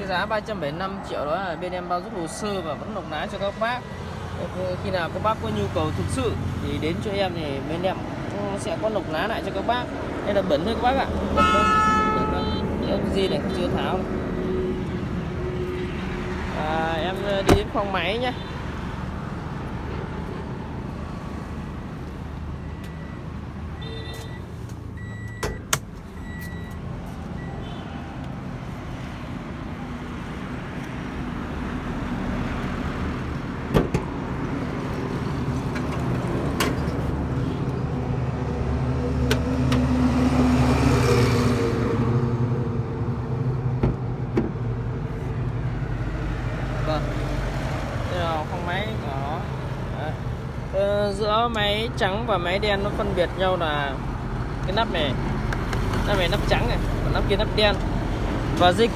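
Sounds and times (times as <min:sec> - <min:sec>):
low rumble of traffic: 0:00.0 - 0:58.9
vehicle passing: 0:34.2 - 0:43.8.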